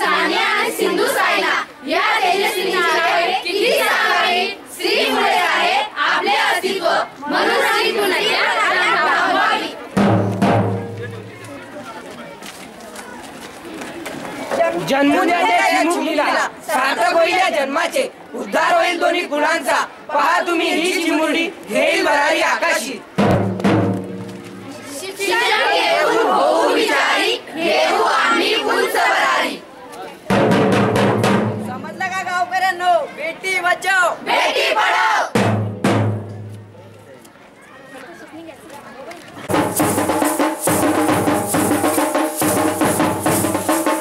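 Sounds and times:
children shouting and chattering: 0:00.0 - 0:23.3, 0:24.0 - 0:30.4, 0:31.6 - 0:44.0
drum hit: 0:10.0 - 0:11.3, 0:23.2 - 0:24.7, 0:30.3 - 0:32.2, 0:35.4 - 0:36.7, 0:39.5 - 0:44.0
children shouting in unison: 0:34.2 - 0:35.3.

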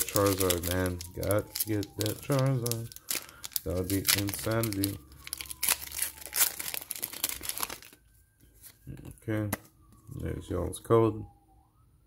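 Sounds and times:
foil wrapper torn and crinkled: 0:00.0 - 0:08.0.

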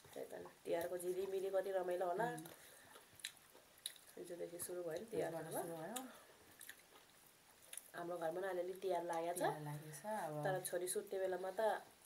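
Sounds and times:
woman's voice: 0:00.1 - 0:02.5, 0:04.2 - 0:06.2, 0:08.0 - 0:11.9
chewing and wet mouth clicks: 0:02.4 - 0:04.2, 0:05.9 - 0:08.0.

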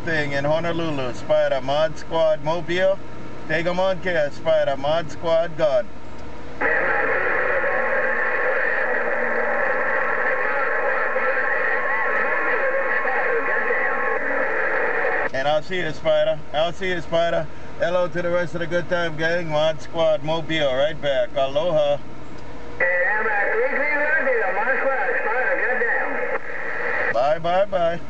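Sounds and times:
garbled radio voice: 0:06.6 - 0:15.3, 0:22.8 - 0:28.0
radio hiss: 0:06.6 - 0:18.1, 0:22.8 - 0:28.0.

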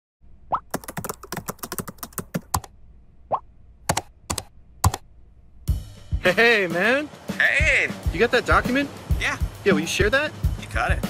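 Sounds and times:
keyboard typing: 0:00.7 - 0:02.7, 0:03.9 - 0:05.0.

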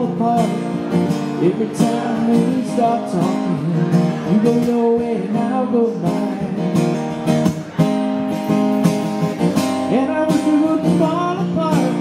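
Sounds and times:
man singing: 0:00.0 - 0:07.1, 0:09.8 - 0:12.0
acoustic guitar strumming: 0:00.0 - 0:12.0.

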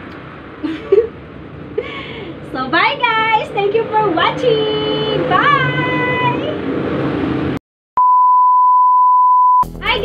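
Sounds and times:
electronic beep tone: 0:08.0 - 0:09.7.

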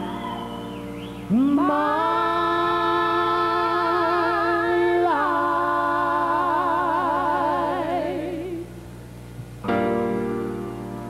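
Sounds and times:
keyboard chord: 0:09.6 - 0:11.0.

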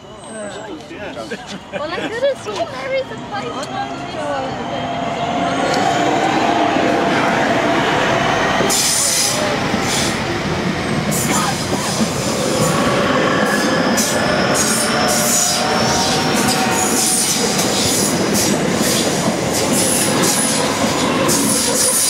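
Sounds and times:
train wheels rumbling on rail: 0:00.7 - 0:22.0.

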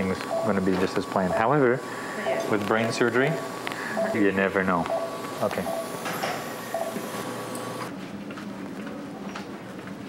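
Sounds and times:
hiss and hum of equipment: 0:00.0 - 0:08.0.

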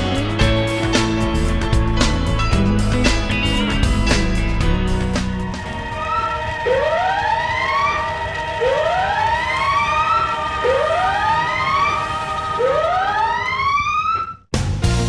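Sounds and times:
fire alarm whoop tone: 0:05.7 - 0:14.5.

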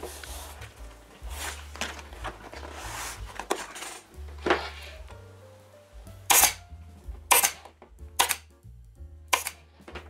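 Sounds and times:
background music: 0:00.0 - 0:10.0
staple gun firing: 0:06.3 - 0:06.6, 0:07.3 - 0:08.5, 0:09.3 - 0:09.6.

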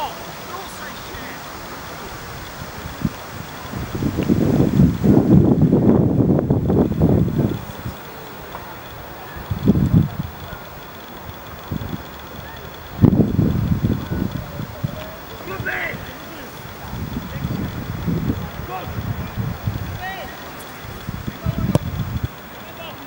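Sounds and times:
outdoor hiss: 0:00.0 - 0:23.0
wind buffeting microphone: 0:00.0 - 0:23.0.

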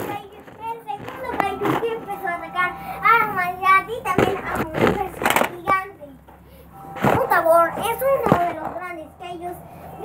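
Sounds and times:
child sing-song voice: 0:00.0 - 0:06.2, 0:07.0 - 0:10.0.

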